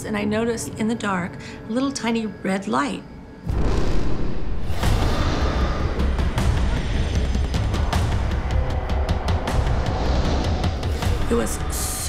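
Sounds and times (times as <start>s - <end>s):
sharp hits: 3.4s - 10.7s
deep heavy rumble: 3.5s - 11.8s.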